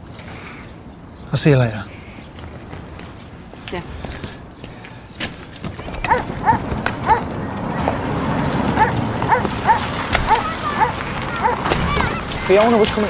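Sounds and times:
steady low rumble: 5.8 - 11.6
dog barking: 6.0 - 7.3, 8.8 - 11.7.

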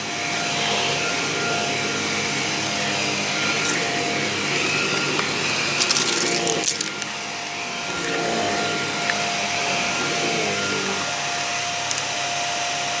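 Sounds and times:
vacuum cleaner motor whine: 0.0 - 13.0.

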